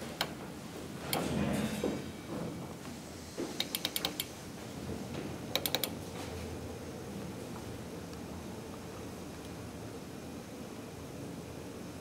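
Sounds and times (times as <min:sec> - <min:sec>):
elevator machinery clicking: 0:00.0 - 0:00.5, 0:03.6 - 0:04.4, 0:05.4 - 0:06.0.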